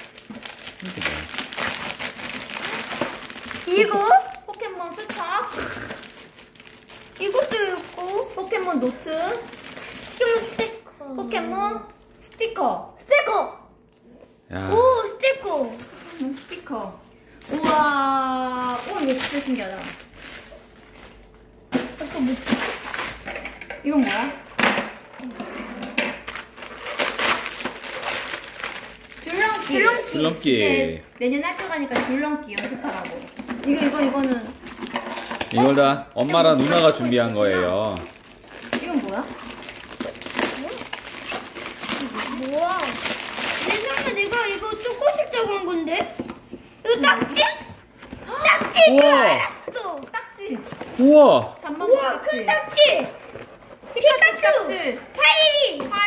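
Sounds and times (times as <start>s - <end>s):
foil gift wrap crinkling: 0.0s - 13.1s, 13.8s - 23.3s, 24.1s - 46.0s, 50.2s - 56.0s.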